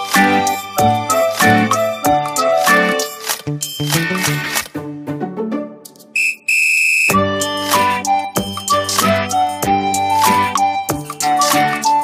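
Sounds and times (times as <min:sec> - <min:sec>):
background music: 0:00.0 - 0:06.4, 0:07.1 - 0:12.0
high whistle-like tone: 0:06.2 - 0:07.3.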